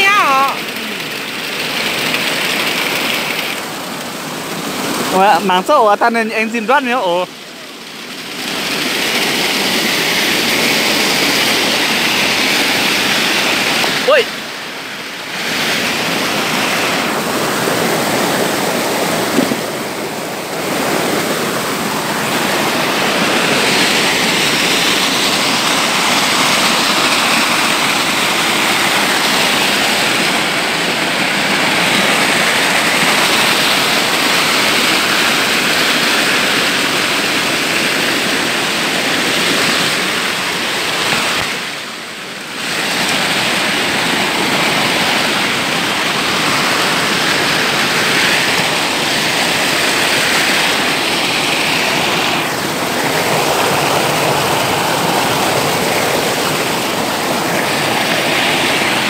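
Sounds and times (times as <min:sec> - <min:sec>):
mountain stream rushing and splashing: 0:00.0 - 0:59.0.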